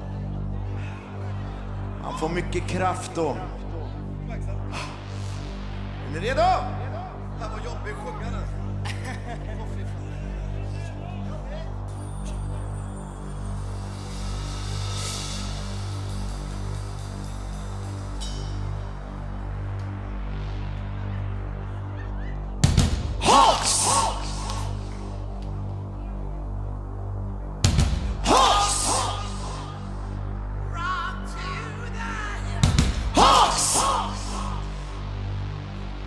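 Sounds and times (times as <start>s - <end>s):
drums: 13.5s - 20.7s, 22.5s - 25.1s, 27.6s - 30.0s, 32.4s - 34.9s.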